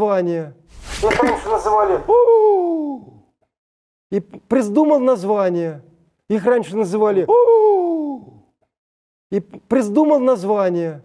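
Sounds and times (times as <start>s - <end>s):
man hooting: 2.1s - 3.2s, 7.3s - 8.4s.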